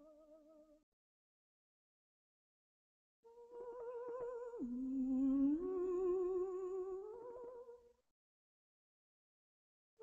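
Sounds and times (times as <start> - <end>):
soprano singing with vibrato: 3.4 - 7.6.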